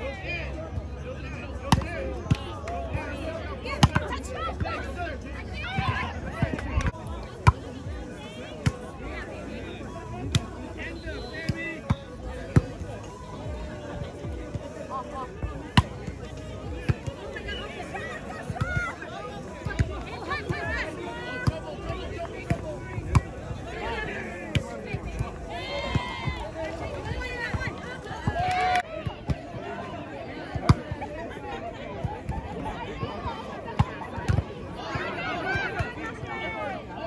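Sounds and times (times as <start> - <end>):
players calling out: 1.3 - 37.0.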